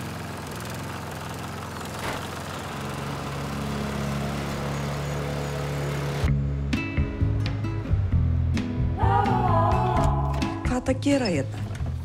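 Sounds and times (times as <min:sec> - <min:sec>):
small engine running: 0:00.0 - 0:06.3.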